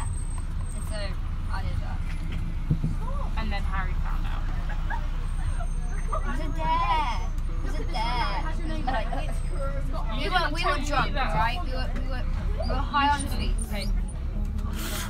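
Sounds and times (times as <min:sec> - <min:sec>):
coach engine rumble: 0:00.0 - 0:15.0
passengers talking: 0:00.0 - 0:15.0.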